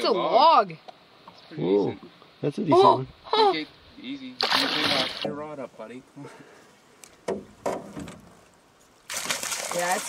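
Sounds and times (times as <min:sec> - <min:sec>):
sharp knocks: 0:07.2 - 0:08.2.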